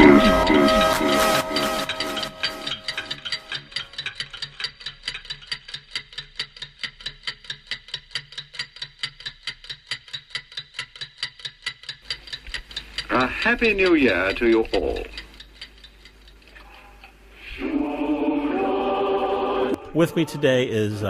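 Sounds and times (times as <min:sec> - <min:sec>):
clock ticking: 0:00.0 - 0:20.7.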